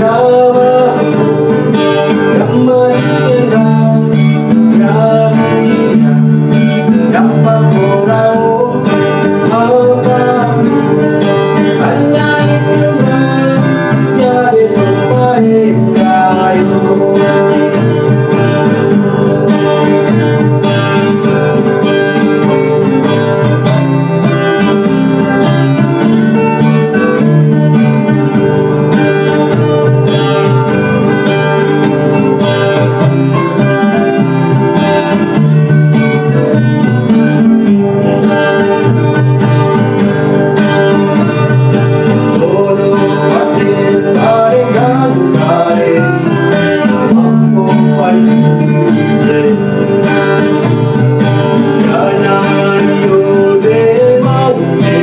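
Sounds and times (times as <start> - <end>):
homemade bass: 0.0 - 55.0
man singing: 0.0 - 55.0
plucked melody guitar: 0.0 - 55.0
strummed nylon-string guitar: 0.0 - 55.0.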